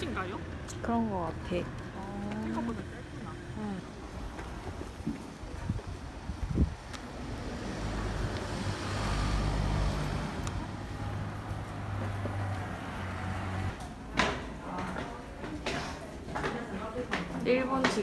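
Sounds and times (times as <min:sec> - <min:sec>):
vehicle engine humming: 0:00.0 - 0:13.8.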